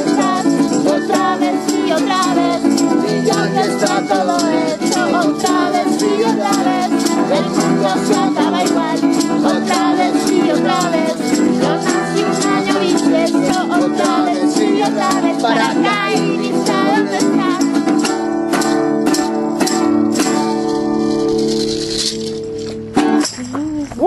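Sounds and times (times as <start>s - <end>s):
melodica melody: 0.0s - 18.9s
shaker ticking: 0.0s - 24.0s
strummed guitars: 0.0s - 24.0s.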